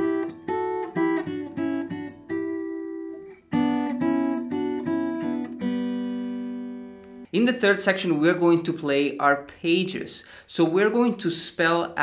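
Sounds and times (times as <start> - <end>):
fingerpicked acoustic guitar: 0.0 - 7.3.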